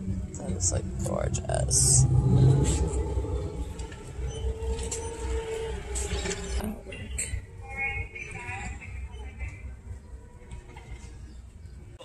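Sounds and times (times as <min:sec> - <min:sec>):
vehicle engine running: 0:00.0 - 0:10.1.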